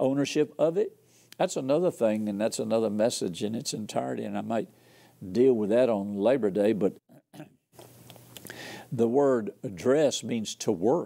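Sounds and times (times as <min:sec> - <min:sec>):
man speaking: 0:00.0 - 0:07.0, 0:08.9 - 0:11.0
man breathing: 0:04.8 - 0:05.2, 0:08.4 - 0:08.9.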